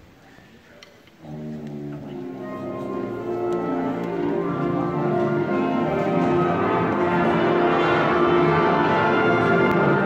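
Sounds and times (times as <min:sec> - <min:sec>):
concert band playing: 0:01.2 - 0:10.0.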